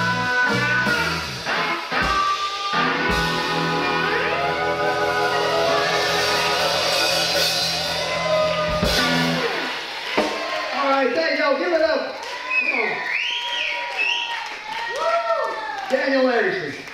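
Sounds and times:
electric guitar ringing: 0.0 - 10.0
drums: 0.0 - 11.9
people whooping and shouting: 3.8 - 11.2, 12.1 - 16.9
drum and cymbal hit: 5.4 - 10.5.

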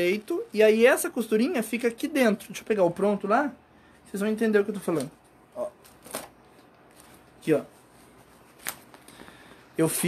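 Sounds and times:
fabric rustling: 4.7 - 10.0.

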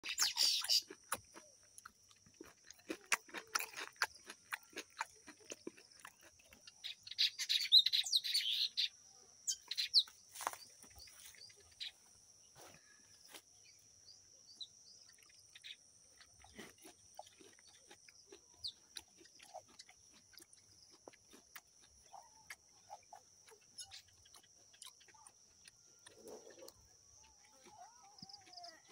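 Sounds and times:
crunchy chewing: 0.0 - 28.9.

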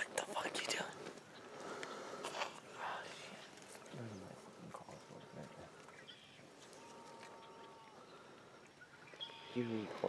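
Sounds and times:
person whispering: 0.0 - 1.0, 2.7 - 5.0.

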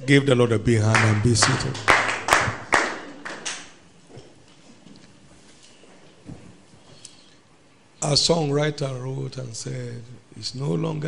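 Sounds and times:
congregation applause: 0.8 - 3.8
sharp single claps: 1.0 - 3.8.

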